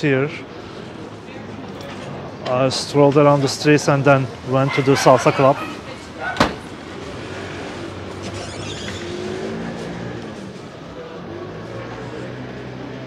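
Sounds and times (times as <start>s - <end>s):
faint voices: 0.0s - 13.0s
car driving past on brick street: 5.6s - 13.0s.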